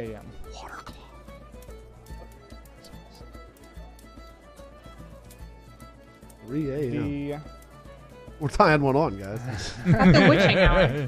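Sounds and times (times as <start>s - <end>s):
light irregular clicks: 0.0s - 9.5s
quiet background music: 0.0s - 11.0s.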